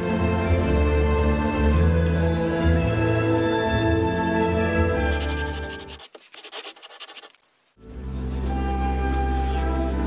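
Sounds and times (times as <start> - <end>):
music: 0.0 - 6.0, 7.8 - 10.0
pen scratching on paper: 5.1 - 7.4.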